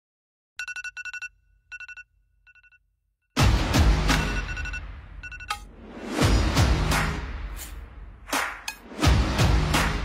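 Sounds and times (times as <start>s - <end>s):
smartphone alarm beeping: 0.6s - 2.8s, 4.2s - 5.6s.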